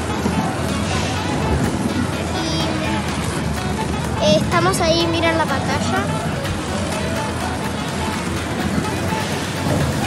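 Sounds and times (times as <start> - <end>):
background music: 0.0 - 10.0
busy room noise: 0.0 - 10.0.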